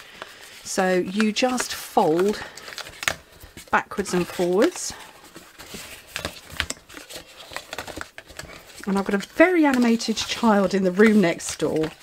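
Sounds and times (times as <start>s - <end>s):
cardstock rustling as folded: 0.0s - 12.0s.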